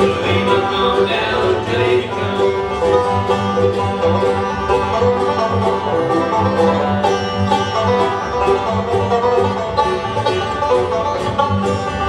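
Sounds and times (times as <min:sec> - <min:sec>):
acoustic string-band music: 0:00.0 - 0:12.0.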